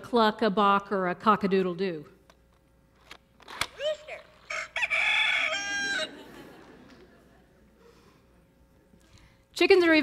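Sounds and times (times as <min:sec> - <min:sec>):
recorded rooster crow from toy: 0:04.4 - 0:06.2.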